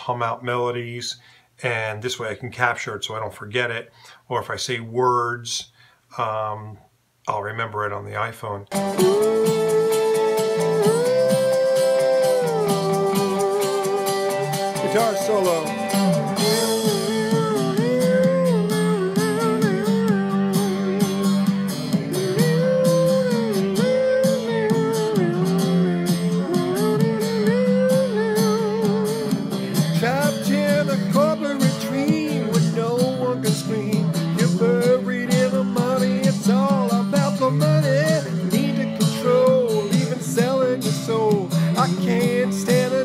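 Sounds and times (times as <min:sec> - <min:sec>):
guitar backing track: 0:08.7 - 0:43.0
person humming a melody: 0:08.9 - 0:43.0.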